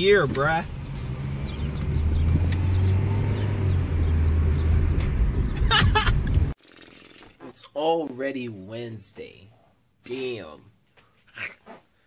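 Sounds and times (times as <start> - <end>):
car engine and road noise: 0.0 - 6.6.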